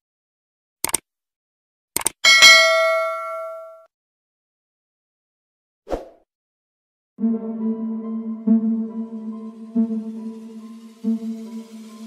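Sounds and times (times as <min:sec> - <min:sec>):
bright bell ding: 0:02.2 - 0:03.9.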